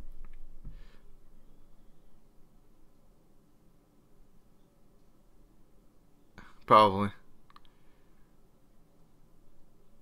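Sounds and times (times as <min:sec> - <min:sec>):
man speaking: 0:06.4 - 0:07.2
faint clicks: 0:07.4 - 0:07.8.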